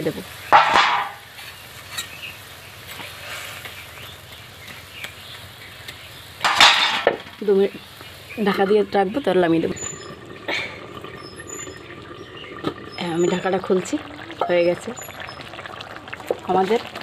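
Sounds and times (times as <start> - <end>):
gravy simmering: 0.0 - 17.0
loud sizzle of frying food: 0.0 - 17.0.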